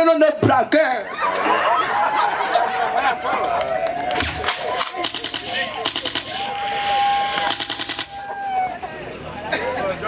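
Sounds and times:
rapid sharp clicks: 0:04.5 - 0:06.4, 0:07.4 - 0:08.2.

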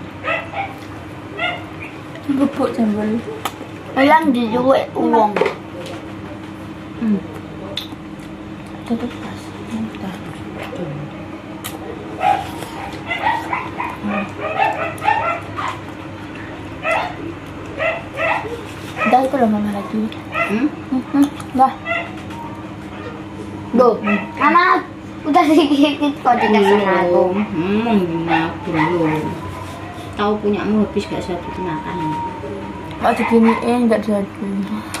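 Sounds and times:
dog yipping: 0:00.2 - 0:00.8, 0:01.4 - 0:02.0, 0:12.2 - 0:15.9, 0:16.8 - 0:17.2, 0:17.8 - 0:19.2, 0:20.3 - 0:20.6, 0:21.8 - 0:22.2, 0:24.0 - 0:24.5, 0:28.2 - 0:30.1, 0:33.0 - 0:33.8.

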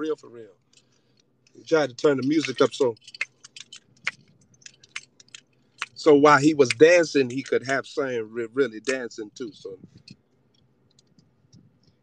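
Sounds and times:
small clicks and ticks: 0:00.6 - 0:07.9, 0:09.8 - 0:12.0.

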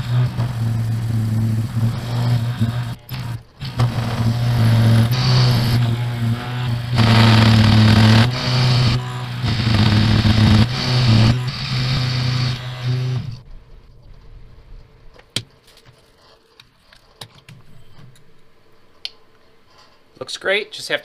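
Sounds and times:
milling cutter cutting steel: 0:00.0 - 0:13.4
milling machine motor hum: 0:00.0 - 0:13.4.

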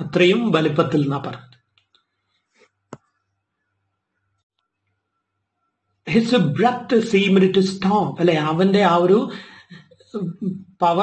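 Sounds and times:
man speaking: 0:00.0 - 0:01.6, 0:06.1 - 0:09.4, 0:10.1 - 0:11.0.

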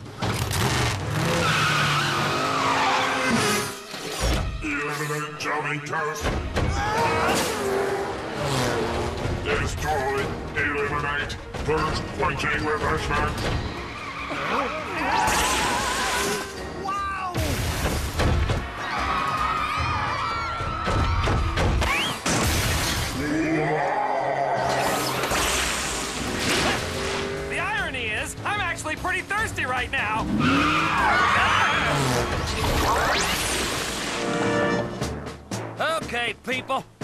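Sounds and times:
cartoon race car engine revving: 0:00.2 - 0:03.8
tyres screeching: 0:01.0 - 0:04.2, 0:13.3 - 0:16.6
background music: 0:01.5 - 0:37.0
tyres squealing: 0:13.4 - 0:16.5
wavering voices crying out: 0:23.2 - 0:25.0, 0:30.3 - 0:32.2.

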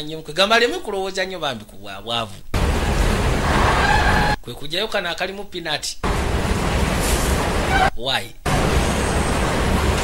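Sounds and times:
subway train rumbling: 0:02.6 - 0:04.4, 0:06.1 - 0:07.9, 0:08.5 - 0:10.0.

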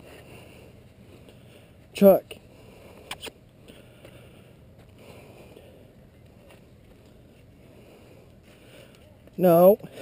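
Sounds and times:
faint low outdoor rumble: 0:00.0 - 0:10.0.

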